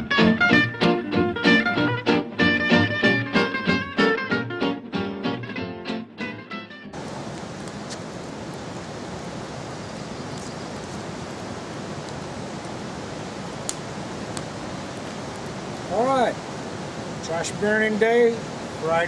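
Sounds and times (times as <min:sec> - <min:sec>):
background music: 0:00.0 - 0:07.0
campfire crackling: 0:00.0 - 0:19.0
steady rushing noise: 0:06.9 - 0:19.0.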